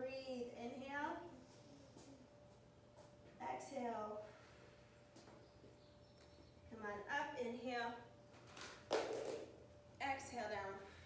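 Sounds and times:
woman speaking: 0.0 - 1.4, 3.4 - 4.3, 6.7 - 8.1, 10.0 - 10.9.

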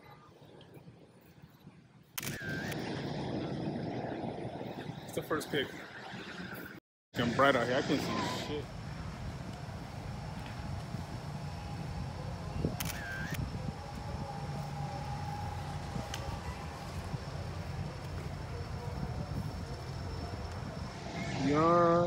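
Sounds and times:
low rumble: 7.2 - 22.0
short high sound: 20.8 - 22.0.

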